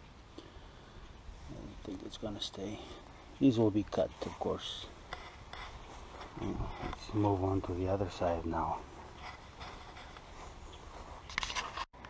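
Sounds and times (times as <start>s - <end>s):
handheld camera rubbing and scraping: 4.2s - 11.9s.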